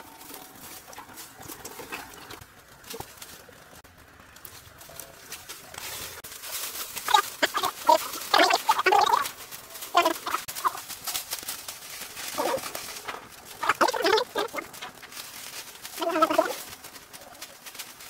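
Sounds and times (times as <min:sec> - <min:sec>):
vines crackling and rustling: 0:00.0 - 0:18.0
bird clucking: 0:07.0 - 0:10.9, 0:12.3 - 0:15.0, 0:15.9 - 0:16.8.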